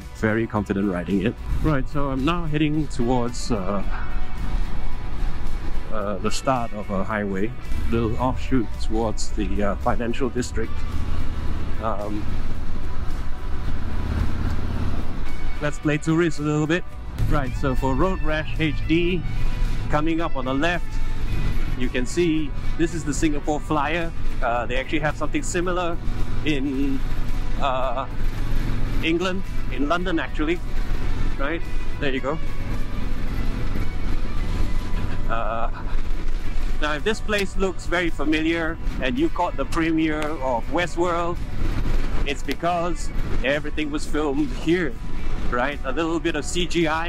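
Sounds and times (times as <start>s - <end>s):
background music: 0.0s - 47.0s
road noise: 0.0s - 47.0s
motorcycle engine running: 1.2s - 15.6s, 17.1s - 47.0s.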